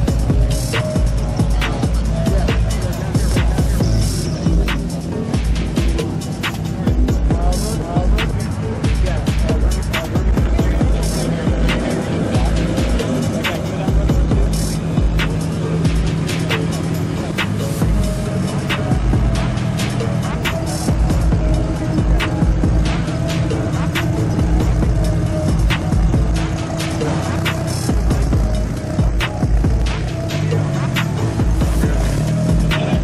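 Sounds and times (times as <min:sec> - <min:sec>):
music with pulsing bass beat: 0:00.0 - 0:33.0.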